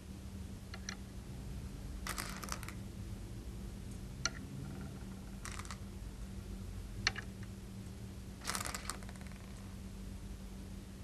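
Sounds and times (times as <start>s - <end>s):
faint steady hum: 0.0s - 11.0s
game stones clicking: 2.1s - 2.8s, 5.3s - 5.8s, 8.4s - 9.6s.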